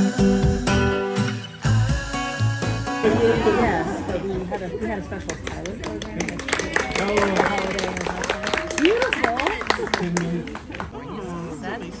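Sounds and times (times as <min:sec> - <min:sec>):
people talking: 0:03.1 - 0:12.0.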